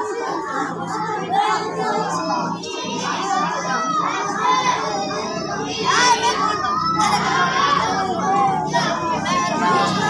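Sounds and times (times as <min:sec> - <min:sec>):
children's voices hubbub: 0:00.0 - 0:10.0.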